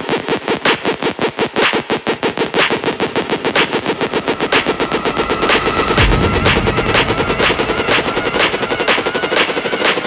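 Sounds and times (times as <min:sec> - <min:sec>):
electronic dance music: 0:00.0 - 0:10.0
bright percussive hits: 0:02.2 - 0:10.0.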